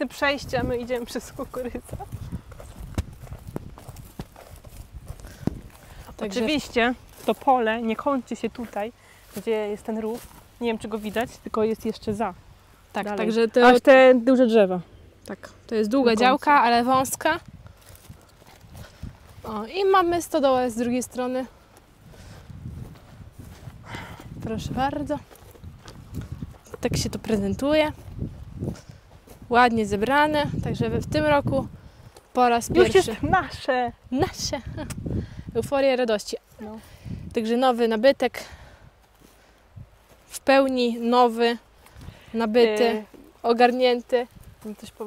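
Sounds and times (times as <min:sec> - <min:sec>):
wind rumble on microphone: 0:00.0 - 0:07.9, 0:16.0 - 0:37.5, 0:39.7 - 0:40.1, 0:44.0 - 0:45.0
footsteps on dry ground: 0:00.0 - 0:13.8, 0:16.2 - 0:35.1, 0:35.8 - 0:45.0.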